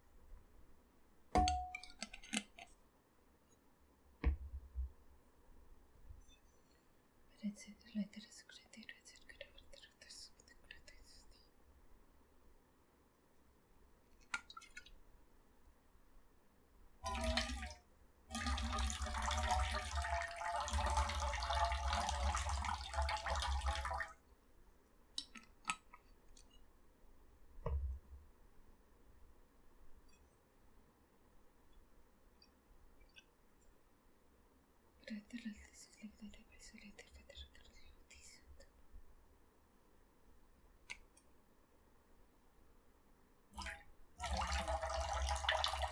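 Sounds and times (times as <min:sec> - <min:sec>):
soft whispered speech: 0:07.3 - 0:11.6, 0:35.0 - 0:38.7
liquid pouring from bottle: 0:17.0 - 0:24.2, 0:43.6 - 0:45.9.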